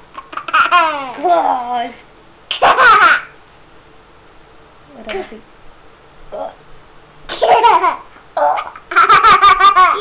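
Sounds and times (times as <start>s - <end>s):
toddler laughing: 0.2s - 1.2s, 2.6s - 3.3s, 7.3s - 10.0s.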